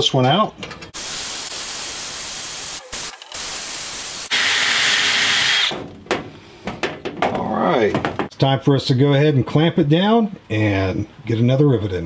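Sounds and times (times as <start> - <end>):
power drill drilling metal: 1.1 - 5.8.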